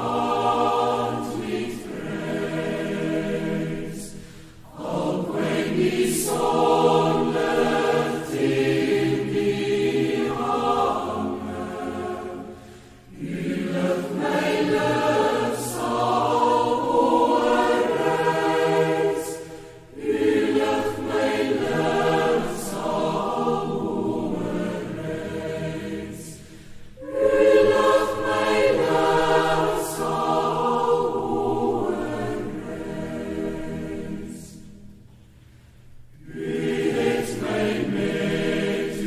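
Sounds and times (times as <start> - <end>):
choir singing slow song: 0.0 - 39.0.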